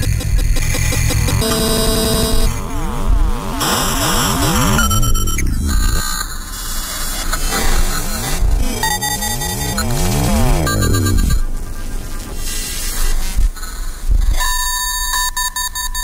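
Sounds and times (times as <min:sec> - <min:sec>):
glitchy electronic music: 0:00.0 - 0:12.9.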